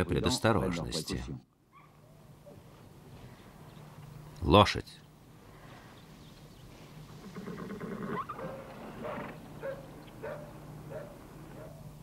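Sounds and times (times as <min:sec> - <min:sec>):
animal calling: 0:07.1 - 0:11.9.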